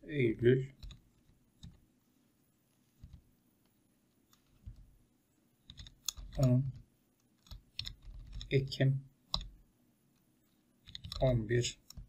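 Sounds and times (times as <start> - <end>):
faint keyboard tapping: 0.6 - 1.9, 2.8 - 5.0, 5.6 - 12.0.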